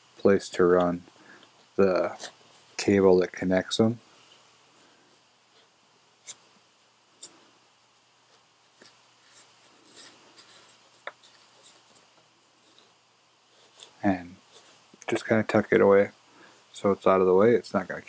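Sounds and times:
cable rustling and scratching: 0.2s - 3.0s, 8.3s - 15.3s.

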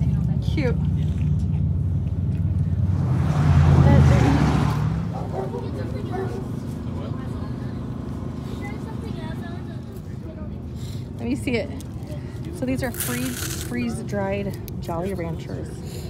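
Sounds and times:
engine humming: 0.0s - 16.0s
faint voices: 5.1s - 16.0s.

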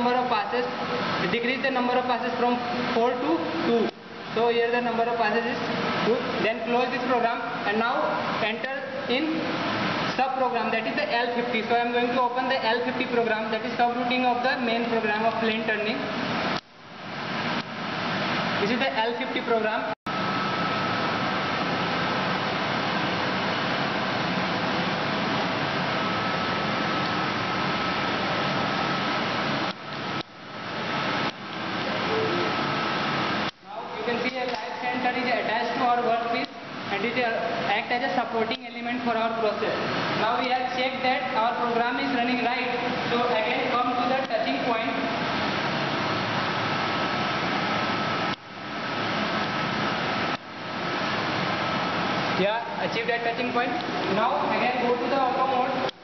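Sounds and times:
faint high whine: 0.0s - 56.0s.

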